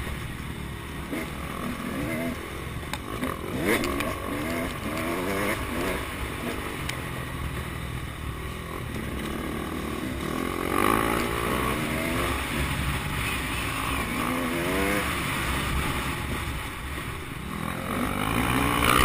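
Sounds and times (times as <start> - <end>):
dirt bike engine revving: 1.0 - 7.6, 8.4 - 19.0.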